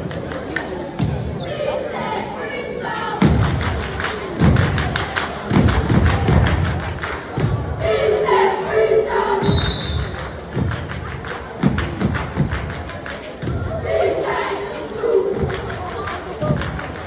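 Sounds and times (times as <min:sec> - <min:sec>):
hand claps: 0:00.0 - 0:00.8, 0:03.4 - 0:07.3, 0:10.0 - 0:13.6, 0:14.8 - 0:17.0
voices chanting together: 0:01.0 - 0:10.6, 0:13.2 - 0:17.0.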